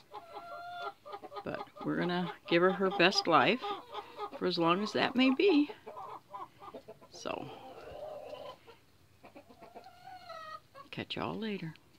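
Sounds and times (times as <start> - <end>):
hen making soft drawn-out calls: 0.0 - 10.9.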